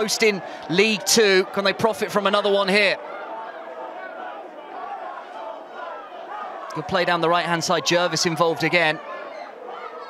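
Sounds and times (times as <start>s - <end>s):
crowd of many voices: 0.0s - 10.0s.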